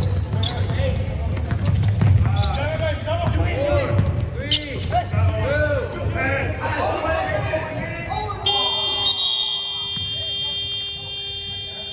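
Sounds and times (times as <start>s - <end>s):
scoreboard buzzer: 8.5s - 11.9s.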